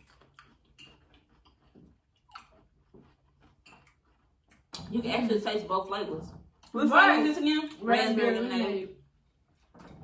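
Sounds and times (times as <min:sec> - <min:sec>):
people chewing: 0:00.0 - 0:10.0.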